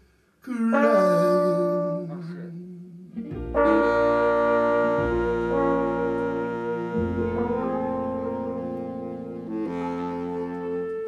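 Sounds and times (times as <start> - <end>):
horn section playing chords: 3.3 - 11.0.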